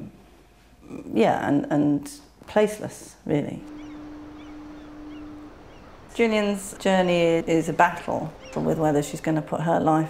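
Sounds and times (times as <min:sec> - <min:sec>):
faint outdoor hiss: 0:00.2 - 0:10.0
small high chirps: 0:03.6 - 0:09.4
steady low tone: 0:03.6 - 0:10.0.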